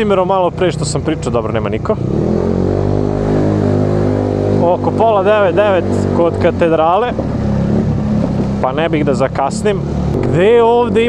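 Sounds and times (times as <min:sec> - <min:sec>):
wind noise on microphone: 0:07.0 - 0:08.8.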